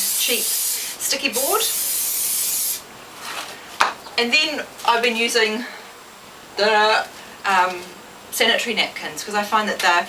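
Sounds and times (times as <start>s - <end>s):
aerosol spray can hissing: 0.0s - 2.8s.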